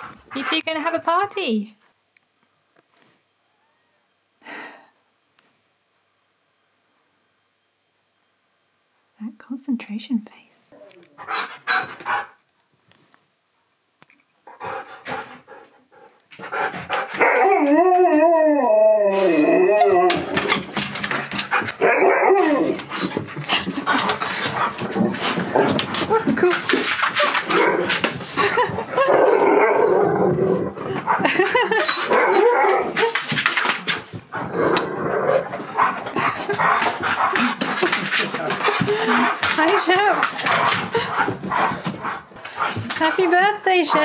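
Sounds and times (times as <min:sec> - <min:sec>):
dog howling: 0:17.2 - 0:20.6, 0:22.0 - 0:22.8, 0:32.1 - 0:33.1.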